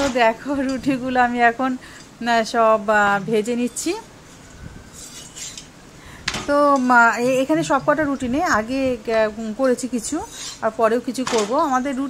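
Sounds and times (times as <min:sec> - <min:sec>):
metal spatula scraping griddle: 0:03.4 - 0:05.7, 0:10.1 - 0:10.7.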